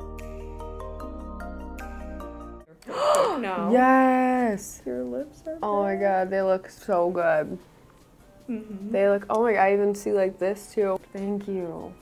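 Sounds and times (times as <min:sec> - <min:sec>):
background music: 0:00.0 - 0:12.0
woman's drawn-out ohh: 0:02.8 - 0:03.6
woman gasping: 0:02.8 - 0:03.7.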